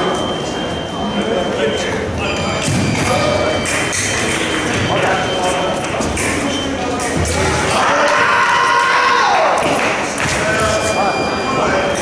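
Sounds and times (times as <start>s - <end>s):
voices echoing in a hall: 0.0s - 12.0s.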